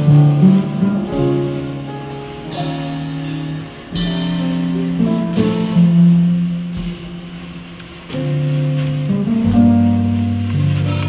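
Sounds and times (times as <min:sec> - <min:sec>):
jazz combo low note: 0:00.0 - 0:11.0.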